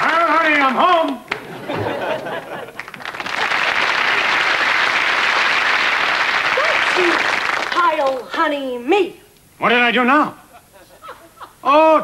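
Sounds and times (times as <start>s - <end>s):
studio audience applauding: 0.0s - 8.2s.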